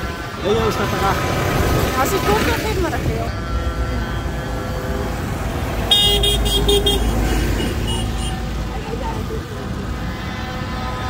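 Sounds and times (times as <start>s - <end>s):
tractor engine rumbling: 0.0s - 11.0s
faint steady tones: 2.6s - 7.1s.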